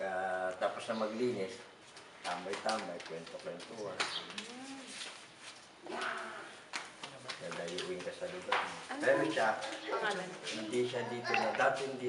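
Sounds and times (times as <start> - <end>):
pigeon cooing: 4.2 - 5.0.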